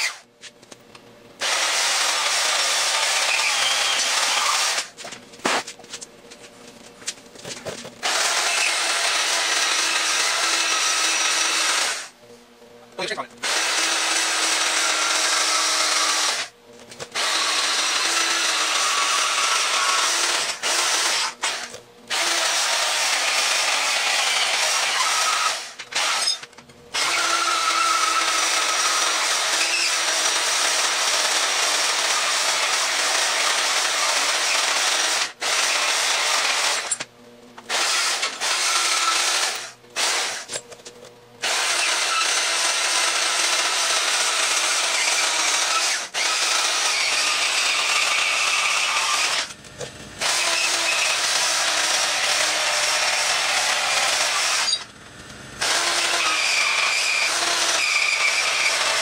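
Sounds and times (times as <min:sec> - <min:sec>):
band saw cutting steel: 0:00.0 - 0:00.3, 0:01.4 - 0:05.6, 0:17.1 - 0:37.0, 0:41.4 - 0:49.6, 0:50.2 - 0:54.9, 0:55.6 - 0:59.0.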